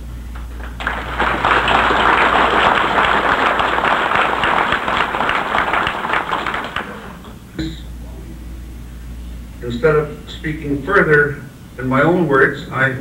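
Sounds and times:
audience applauding: 0.4 - 7.4.

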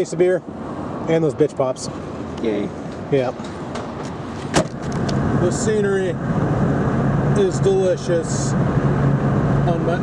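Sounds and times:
car trunk lid slamming: 3.8 - 5.1.

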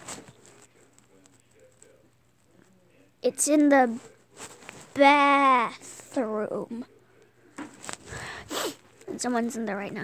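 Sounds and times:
fabric and phone rustling: 0.0 - 2.0, 3.6 - 6.1, 7.6 - 9.1
breathy sound: 8.0 - 8.8.

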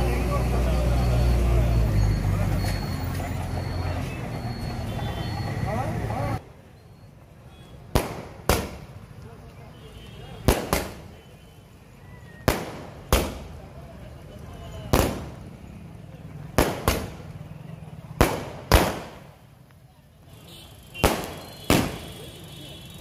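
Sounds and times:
firework bangs echoing: 7.9 - 9.0, 10.4 - 11.1, 12.4 - 13.6, 14.9 - 15.4, 16.5 - 17.3, 18.1 - 19.4, 21.0 - 22.3.

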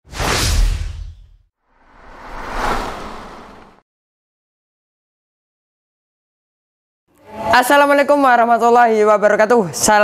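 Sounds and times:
whoosh: 0.1 - 3.8.

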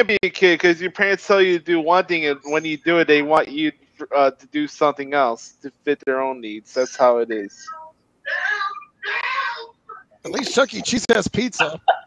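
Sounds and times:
breathy whispery voice sounds: 10.2 - 11.8.

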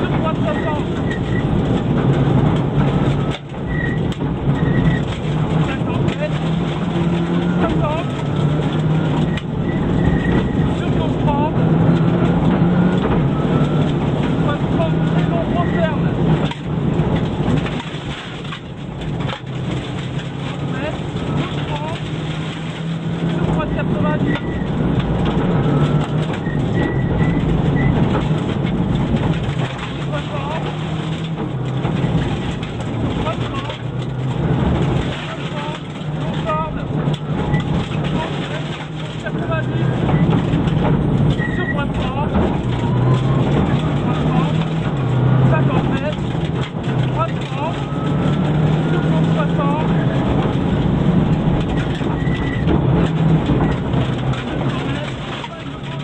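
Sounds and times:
rally car engine revving: 0.0 - 56.0.

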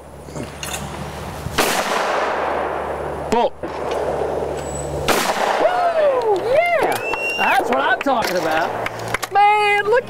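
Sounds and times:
shotgun shot: 1.6 - 3.0, 5.0 - 5.8.

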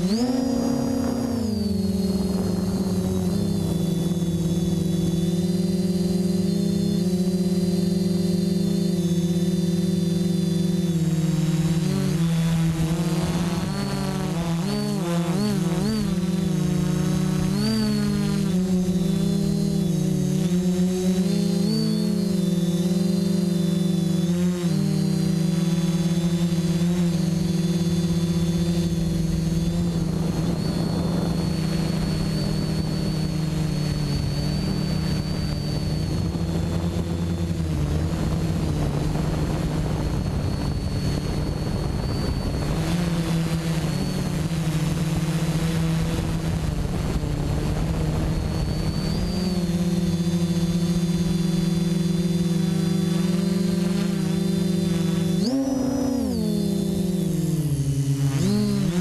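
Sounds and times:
drone propellers buzzing: 0.0 - 59.0.

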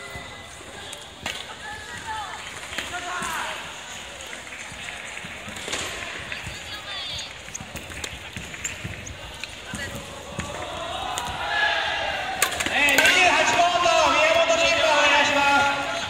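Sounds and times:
chatter of many voices: 0.0 - 16.0.

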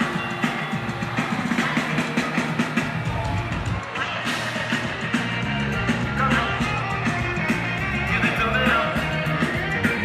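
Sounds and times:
live band with electric guitar: 0.0 - 10.0.

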